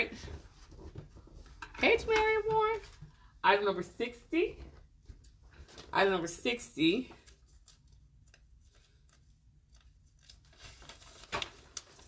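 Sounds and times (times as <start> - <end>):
paper sheets rustling: 5.1 - 12.0.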